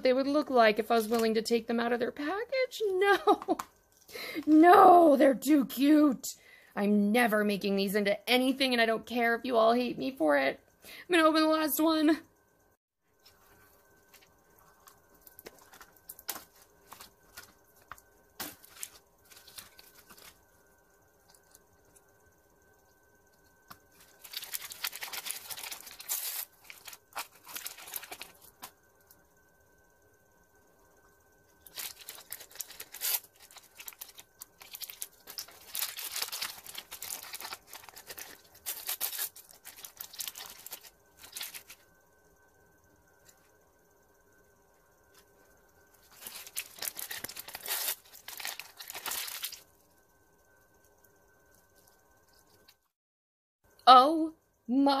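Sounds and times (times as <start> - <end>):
plastic packets crinkling: 23.9 - 28.6, 31.6 - 41.8, 46.1 - 49.7.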